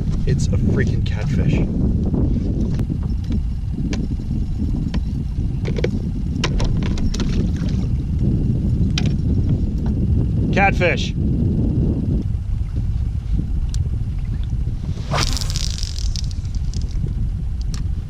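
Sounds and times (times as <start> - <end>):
wind rumble on microphone: 0.0 - 18.0.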